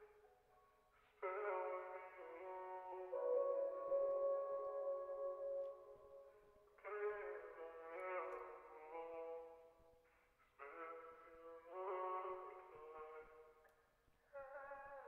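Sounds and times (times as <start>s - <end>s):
auto-tuned vocal harmonies: 1.2s - 9.7s, 10.6s - 15.0s.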